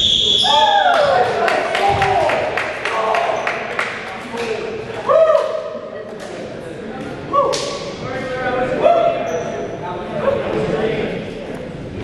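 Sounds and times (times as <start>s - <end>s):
voices calling out with echo: 0.0s - 11.4s.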